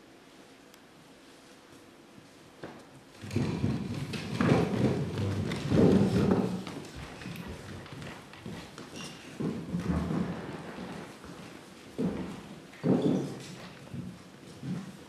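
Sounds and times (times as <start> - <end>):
footsteps and thuds on stage floor: 2.6 - 15.0.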